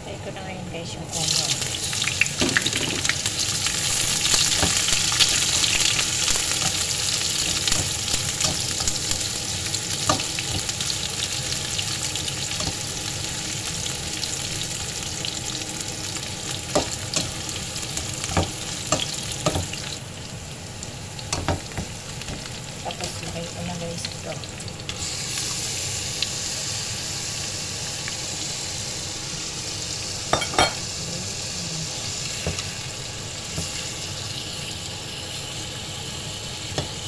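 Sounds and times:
onions sizzling in oil: 0:00.4 - 0:37.0.

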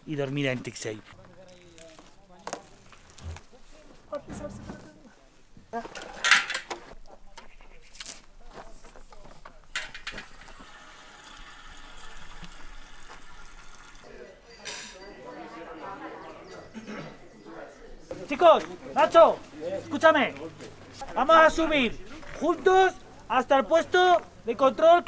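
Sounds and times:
metal fuel caps and cans clinking: 0:06.1 - 0:06.8, 0:09.7 - 0:10.6
petrol pouring into tank: 0:10.2 - 0:14.1.

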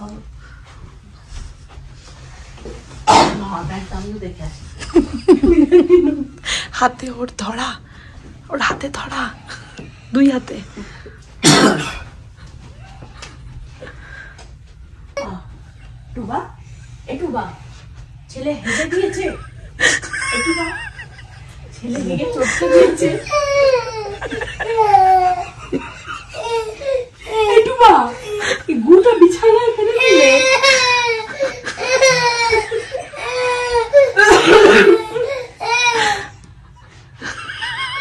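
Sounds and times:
person coughing: 0:03.1 - 0:03.4, 0:11.4 - 0:12.1
toddler crying: 0:22.4 - 0:25.7, 0:26.3 - 0:28.6, 0:29.9 - 0:36.3.

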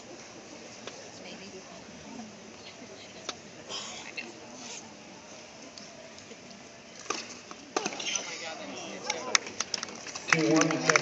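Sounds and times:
low crowd murmur: 0:00.0 - 0:11.0
spectators chatting: 0:00.0 - 0:11.0.

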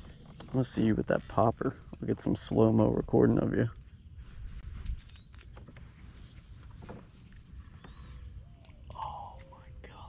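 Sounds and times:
fishing tackle clicking and jingling: 0:04.8 - 0:06.3.

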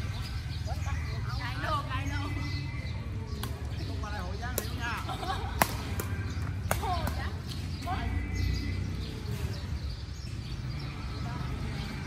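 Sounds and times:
rackets hitting shuttlecock: 0:03.4 - 0:03.7, 0:04.5 - 0:07.3.

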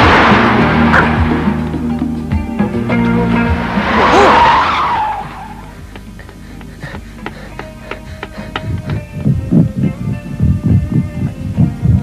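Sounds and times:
background music: 0:00.0 - 0:12.0
cartoon tyres screeching: 0:03.2 - 0:05.8.

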